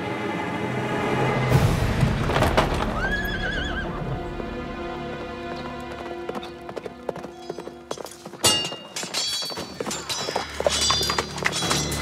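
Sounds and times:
background music: 0:00.0 - 0:12.0
horse whinnying: 0:03.0 - 0:04.0
hooves clip-clopping: 0:05.1 - 0:12.0.

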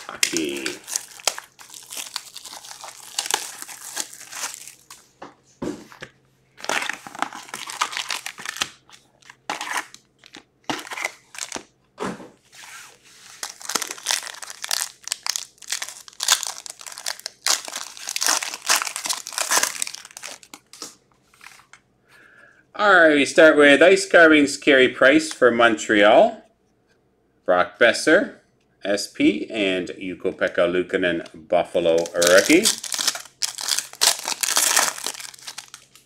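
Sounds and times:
card pack wrappers crackling: 0:00.0 - 0:05.1, 0:06.6 - 0:11.7, 0:13.3 - 0:21.6, 0:31.9 - 0:36.0
shrink wrap crinkling and tearing: 0:00.0 - 0:05.1, 0:06.6 - 0:11.7, 0:13.2 - 0:21.8, 0:31.9 - 0:36.0.

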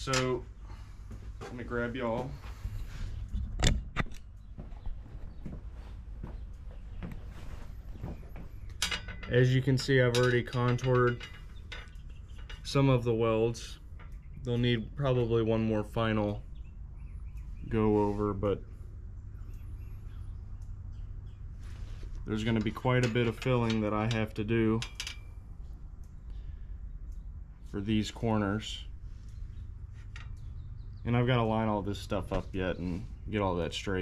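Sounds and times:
light clunks and rustle: 0:00.0 - 0:12.8
low steady rumble: 0:00.0 - 0:34.0
distant bird chirps: 0:02.0 - 0:34.0.

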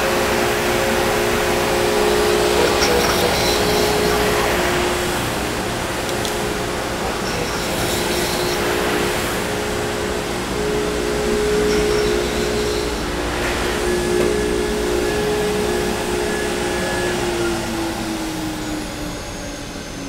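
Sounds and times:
router spindle whine: 0:00.0 - 0:20.0.

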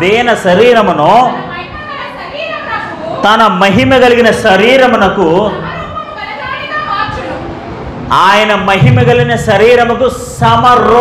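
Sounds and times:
man preaching into a microphone: 0:00.0 - 0:01.5, 0:03.2 - 0:05.7, 0:08.1 - 0:11.0.

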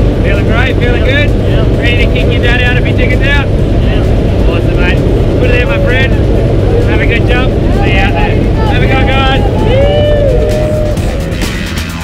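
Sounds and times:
aircraft engine drone: 0:00.0 - 0:12.0
raised voices: 0:05.4 - 0:12.0.

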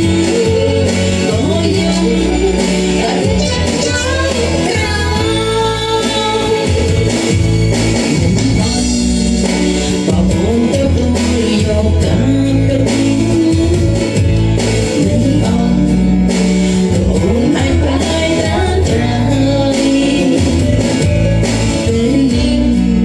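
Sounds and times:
woman singing into microphone: 0:00.0 - 0:07.4, 0:08.1 - 0:23.0
backing music with guitar: 0:00.0 - 0:23.0.

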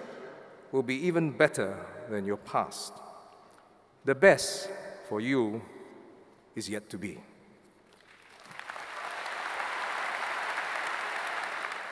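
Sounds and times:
large audience applauding: 0:07.9 - 0:11.9.

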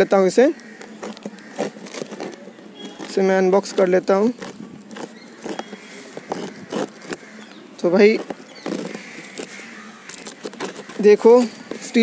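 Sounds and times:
blade slitting packing tape: 0:00.8 - 0:07.4, 0:08.2 - 0:11.9.

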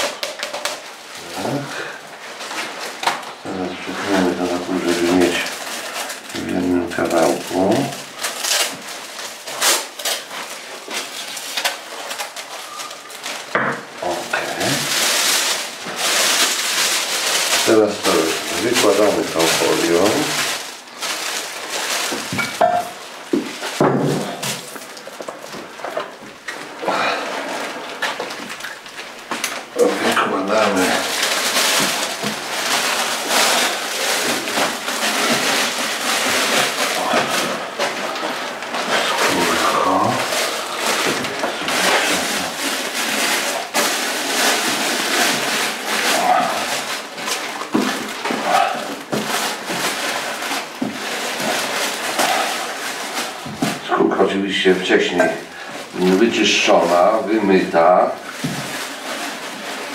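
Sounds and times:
rustling and handling noise: 0:00.0 - 0:59.9
indistinct voices: 0:36.8 - 0:42.6.

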